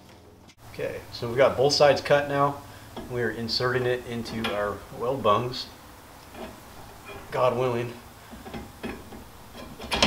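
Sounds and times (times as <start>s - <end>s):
light metal knocks and scrapes: 2.9s - 4.8s, 6.2s - 10.0s.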